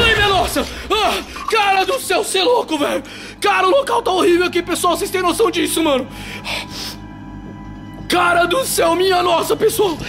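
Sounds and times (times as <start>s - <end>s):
low droning music: 0.0s - 10.0s.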